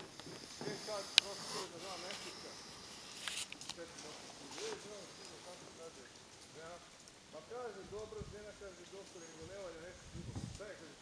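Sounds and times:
quiet indistinct talking: 0:00.0 - 0:11.0.

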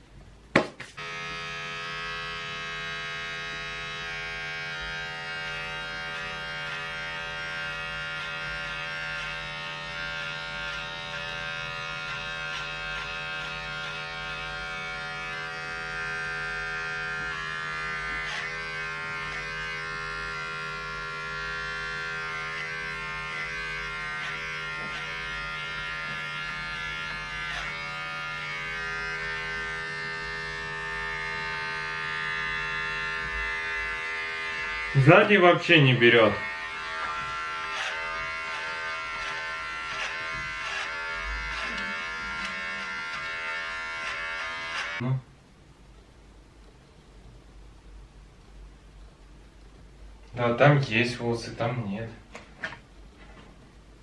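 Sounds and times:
electric hair clipper buzzing: 0:00.9 - 0:45.0.

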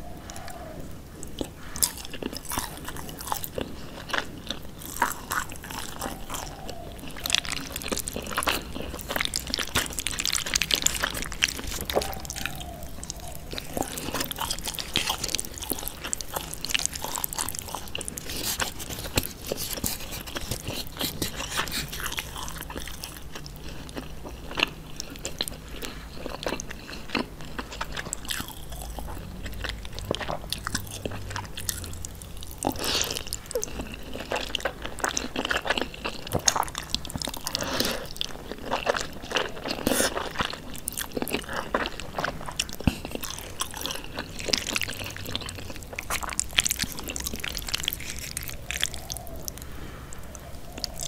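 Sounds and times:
chewing noodles: 0:00.0 - 0:51.0.

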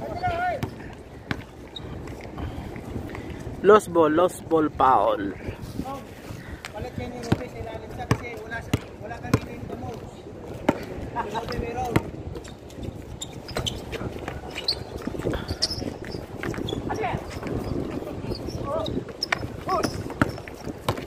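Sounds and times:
basketball bouncing on concrete: 0:00.0 - 0:01.5, 0:07.0 - 0:12.5, 0:18.8 - 0:21.0
players' voices: 0:00.0 - 0:12.5, 0:16.7 - 0:21.0.

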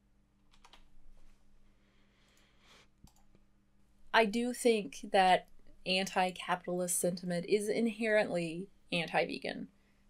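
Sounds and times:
keyboard typing clicks: 0:00.4 - 0:00.9, 0:03.0 - 0:03.4.

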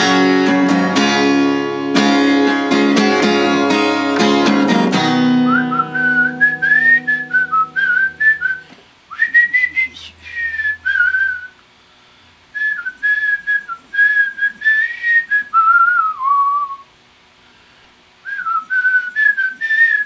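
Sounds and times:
acoustic guitar strummed chords: 0:00.0 - 0:08.8
man whistling a melody: 0:03.3 - 0:11.6, 0:12.6 - 0:16.9, 0:18.2 - 0:20.0.

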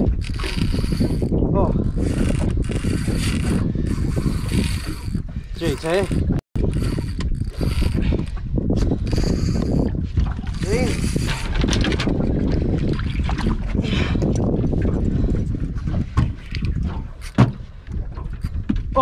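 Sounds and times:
fishing reel winding: 0:00.2 - 0:01.3, 0:01.9 - 0:08.3, 0:09.0 - 0:09.9, 0:10.5 - 0:11.6.

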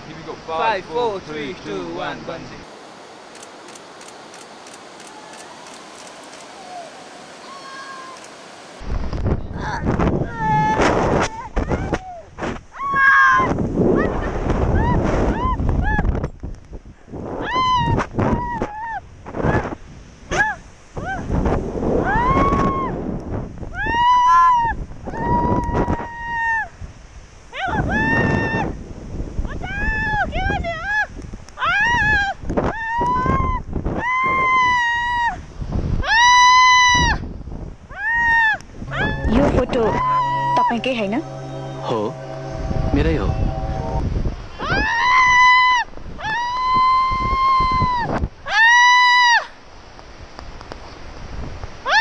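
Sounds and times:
wind rushing over microphone: 0:08.3 - 0:48.5
woman shrieking with excitement: 0:17.4 - 0:19.0, 0:22.0 - 0:23.0, 0:23.8 - 0:26.7, 0:27.6 - 0:28.7, 0:29.6 - 0:35.4, 0:36.0 - 0:37.2, 0:37.9 - 0:40.7, 0:44.6 - 0:49.6
person singing: 0:38.9 - 0:44.0
song with held low note: 0:38.9 - 0:44.4.

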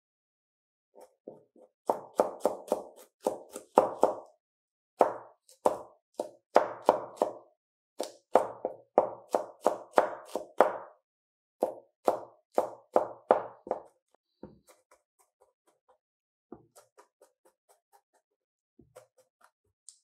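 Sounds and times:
knife chopping on plastic board: 0:01.0 - 0:04.3, 0:05.0 - 0:07.4, 0:08.0 - 0:10.9, 0:11.6 - 0:18.2, 0:18.8 - 0:19.6.

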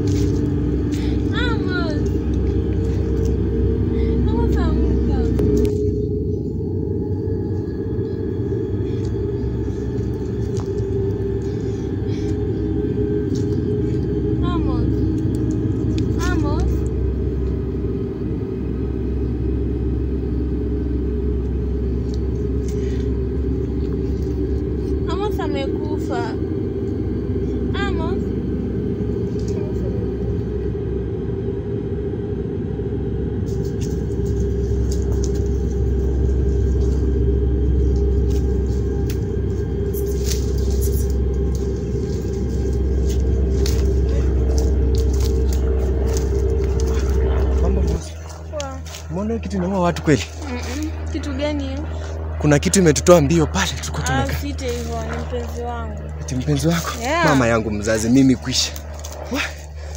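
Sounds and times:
low rumbling drone: 0:00.0 - 0:59.9.

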